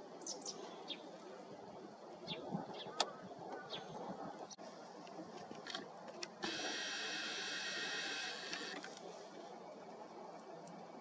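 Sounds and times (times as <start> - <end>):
camera zoom motor whirring: 6.4 - 9.0.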